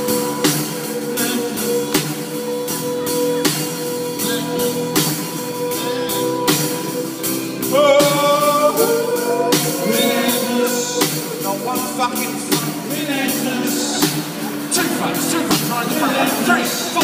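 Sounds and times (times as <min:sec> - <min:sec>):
acoustic guitar: 0:00.0 - 0:17.0
band playing a rock ballad: 0:00.0 - 0:17.0
drum kit beat: 0:00.0 - 0:17.0
man singing long held notes: 0:00.0 - 0:17.0.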